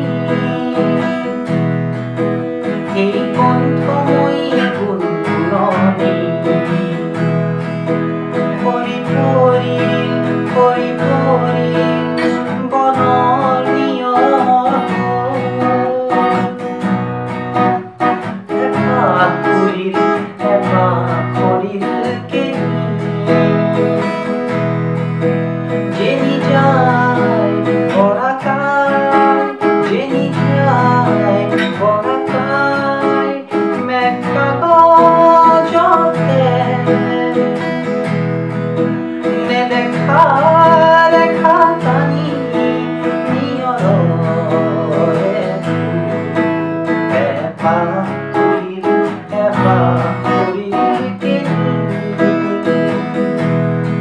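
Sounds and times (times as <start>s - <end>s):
acoustic guitar strumming: 0.0s - 54.0s
man singing: 0.0s - 54.0s.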